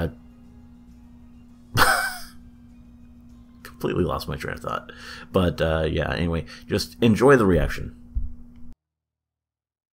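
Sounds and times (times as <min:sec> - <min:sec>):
faint steady hum: 0:00.0 - 0:08.8.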